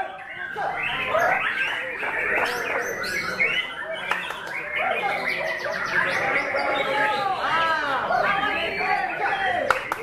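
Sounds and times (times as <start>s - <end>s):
bird singing whistled song: 0.0s - 7.3s
bird sharp clicking notes: 3.9s - 4.8s.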